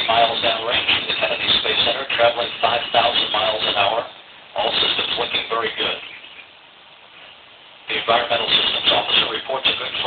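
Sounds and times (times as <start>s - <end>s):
broadcast hiss: 0.0s - 10.0s.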